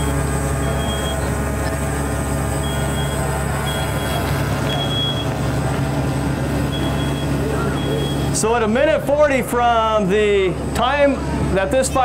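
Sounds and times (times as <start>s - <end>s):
smoke alarm beeping: 0.0s - 1.3s, 2.6s - 5.4s, 6.7s - 8.3s
steady low drone: 0.0s - 12.0s.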